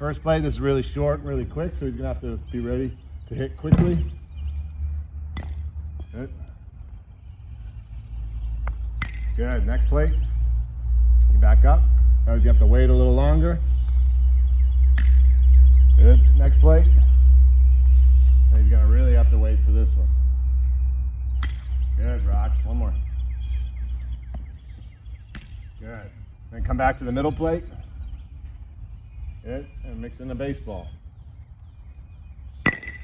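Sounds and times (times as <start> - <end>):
steady low rumble: 0.0 - 33.0
bat hitting plastic ball: 5.3 - 5.7, 8.7 - 9.4, 15.0 - 15.3, 21.4 - 21.8, 32.6 - 33.0.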